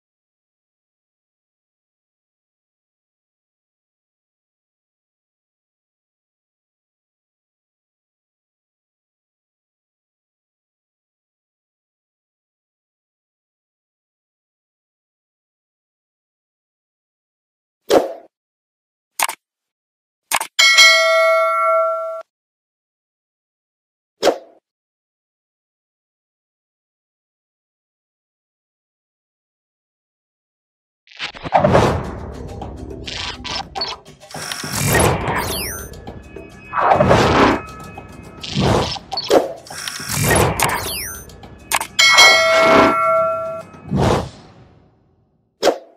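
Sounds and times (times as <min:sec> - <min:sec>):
short click: 0:19.2 - 0:19.4, 0:20.3 - 0:20.5, 0:38.4 - 0:42.0
notification bell ding: 0:20.6 - 0:22.2, 0:35.4 - 0:39.3, 0:40.7 - 0:43.9
swish: 0:31.3 - 0:36.0, 0:36.6 - 0:44.7.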